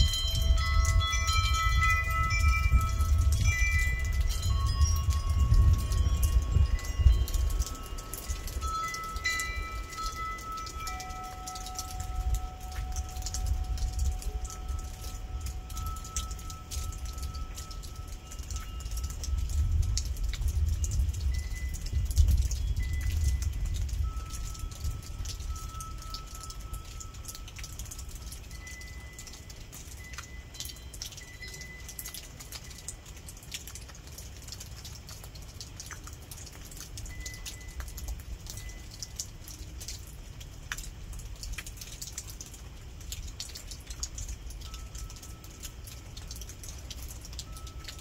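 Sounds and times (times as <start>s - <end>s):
windchimes ringing: 0.0s - 33.3s, 37.0s - 39.8s, 44.7s - 46.2s, 46.8s - 48.0s
rain falling: 0.0s - 48.0s
sharp drips: 0.0s - 48.0s.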